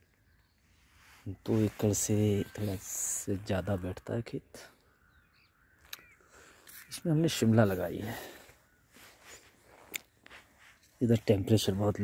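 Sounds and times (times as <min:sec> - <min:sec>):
footsteps on dry soil: 0:08.9 - 0:12.0.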